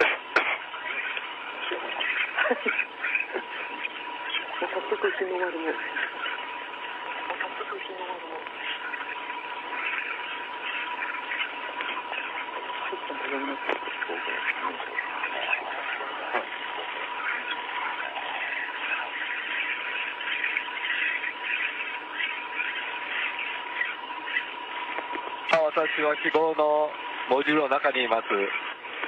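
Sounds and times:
radio-like chatter and hiss: 0.0 - 29.0
short laugh: 2.3 - 3.6.

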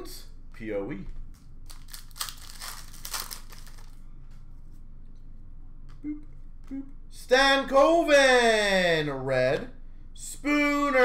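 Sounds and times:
wrapper crumpling: 1.6 - 4.0.

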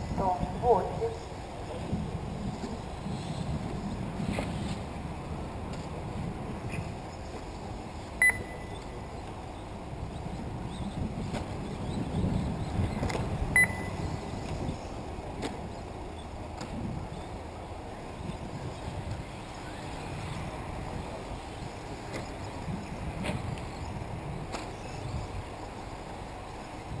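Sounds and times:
low outdoor background noise: 0.0 - 27.0
short electronic beeps: 8.2 - 9.0, 13.6 - 14.1.

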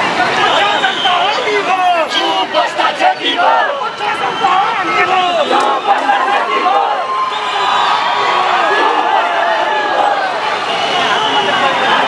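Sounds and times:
crowd shouting together: 0.0 - 12.0.

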